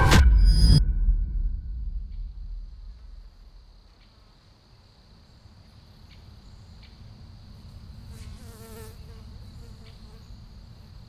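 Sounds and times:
low rumble: 0.0s - 3.8s
flying insect buzzing past: 7.6s - 11.0s.

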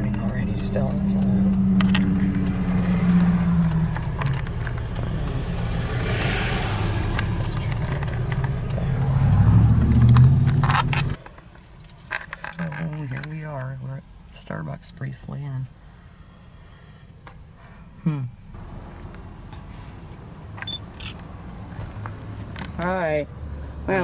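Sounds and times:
person speaking: 0.0s - 5.6s
car engine and road noise: 0.0s - 24.0s.

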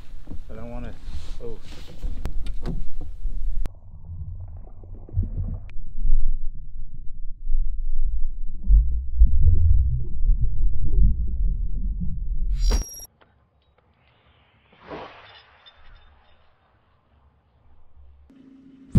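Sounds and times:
muffled underwater rumble: 3.2s - 12.5s.

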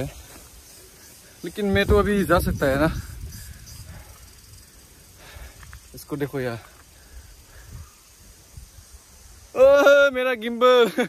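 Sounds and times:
faint high hiss: 0.0s - 11.0s
wind rumbling on microphone: 1.5s - 9.6s.

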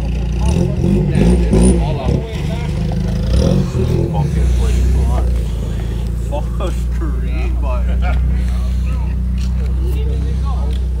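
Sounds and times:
pickup engine idling: 0.0s - 11.0s
voices talking: 0.0s - 11.0s.

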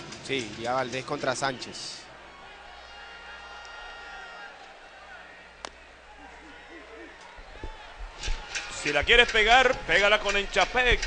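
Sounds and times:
stadium crowd murmur: 1.6s - 11.0s.

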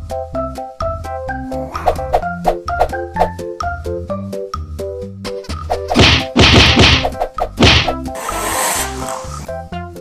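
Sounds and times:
loud whacks: 5.9s - 9.0s.

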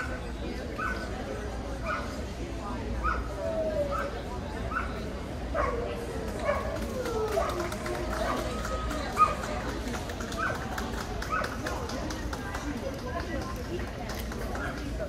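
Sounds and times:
crowd chatter in a hall: 0.0s - 15.0s.

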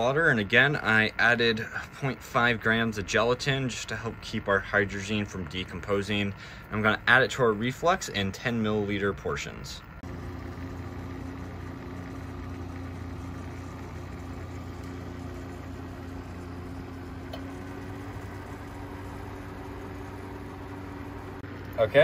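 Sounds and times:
low mechanical hum: 0.0s - 22.0s.

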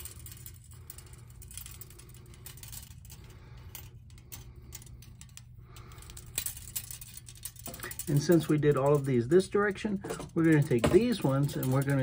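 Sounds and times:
metal blades clicking and rattling: 0.0s - 12.0s.

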